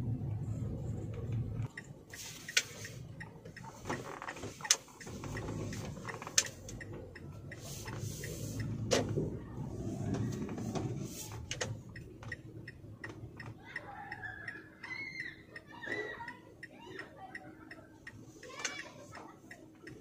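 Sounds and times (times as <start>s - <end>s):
car engine and road hum: 0.0s - 20.0s.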